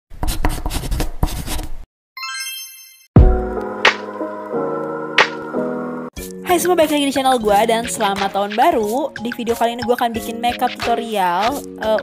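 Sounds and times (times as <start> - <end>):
loud bass hit: 3.2 - 3.6
music with clap-like beat: 3.2 - 4.2, 5.2 - 5.5, 10.5 - 12.0.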